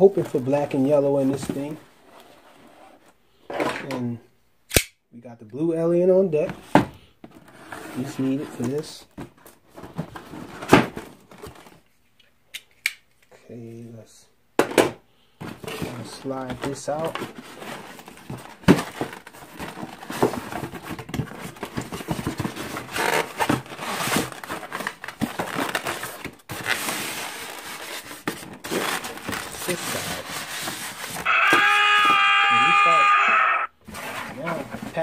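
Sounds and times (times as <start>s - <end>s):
cardboard rustling: 15.4s - 33.0s, 33.7s - 35.0s
cardboard box sliding and scraping: 33.8s - 35.0s.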